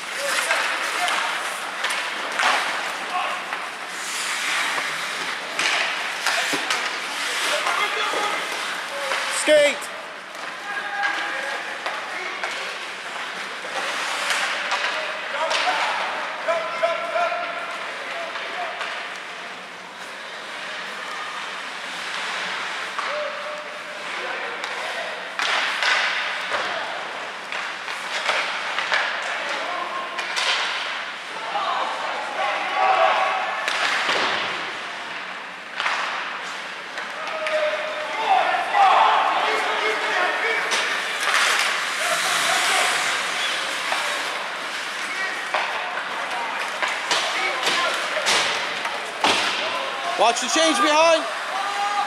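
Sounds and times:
skates scraping ice: 0.0s - 52.0s.

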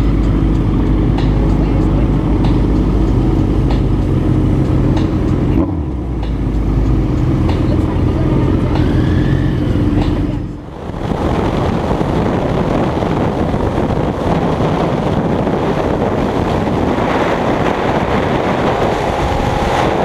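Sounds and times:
motorcycle engines running: 0.0s - 20.0s.

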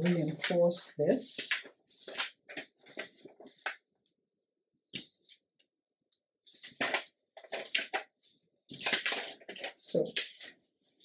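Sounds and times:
paper rustling and sliding: 1.4s - 3.9s, 6.4s - 11.0s.

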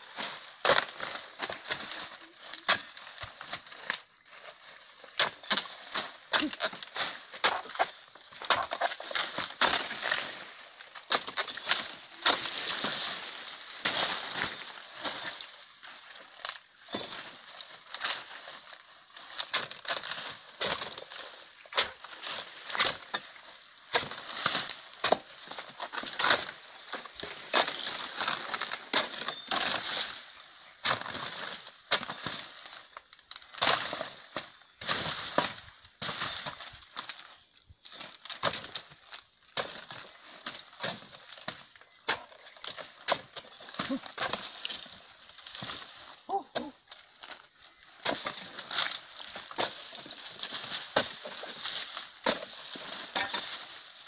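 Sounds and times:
dry fronds rustling: 0.0s - 54.0s
machete chopping palm fronds: 0.1s - 54.0s.

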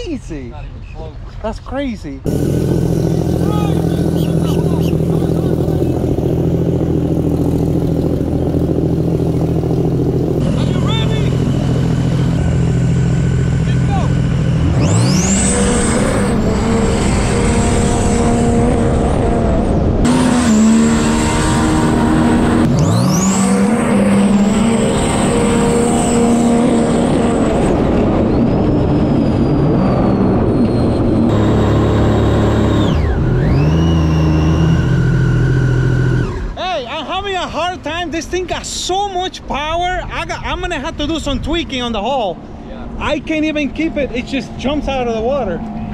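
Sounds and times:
jet ski engine revving: 2.3s - 36.8s, 42.5s - 45.9s.

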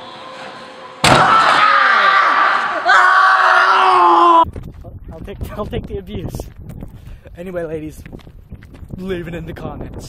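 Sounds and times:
man screaming: 1.3s - 4.4s.

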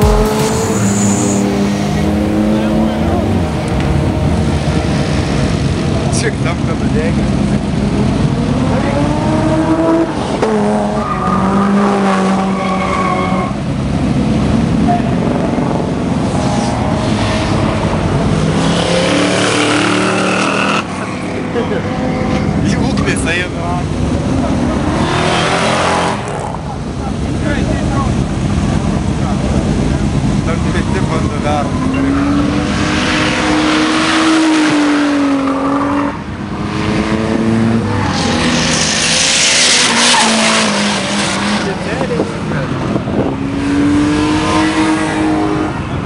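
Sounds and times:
race cars passing: 0.0s - 46.0s.

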